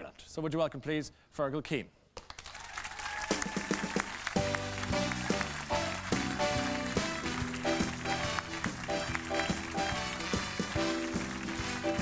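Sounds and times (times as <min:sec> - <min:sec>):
audience applauding: 0:02.2 - 0:12.0
walk-on music: 0:04.4 - 0:12.0.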